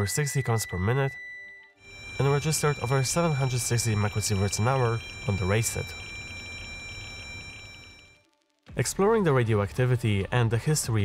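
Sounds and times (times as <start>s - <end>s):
high-pitched electronic alarm tone: 0.0s - 8.2s.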